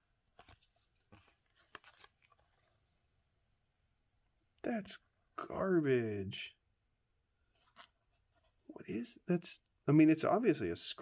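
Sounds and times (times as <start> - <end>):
cards scraping and clicking: 0.4 - 2.7, 7.5 - 8.5.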